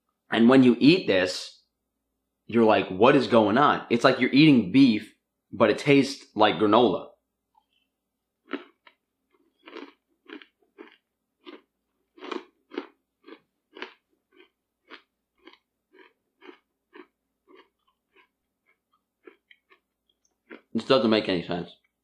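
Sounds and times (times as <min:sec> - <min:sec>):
person chewing crunchy food: 0:07.6 - 0:20.8.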